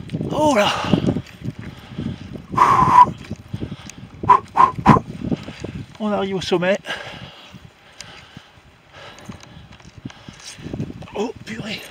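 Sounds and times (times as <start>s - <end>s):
person panting: 0.6s - 5.8s, 6.8s - 10.8s
person breathing heavily: 0.7s - 5.6s, 6.9s - 10.8s.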